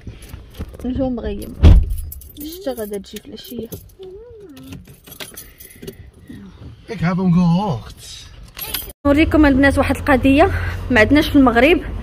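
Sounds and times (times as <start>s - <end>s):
keys jingling: 1.4s - 6.1s, 8.4s - 9.0s.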